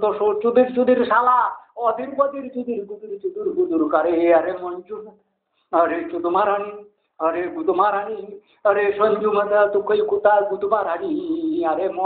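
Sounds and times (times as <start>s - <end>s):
man chanting: 0.0s - 12.0s.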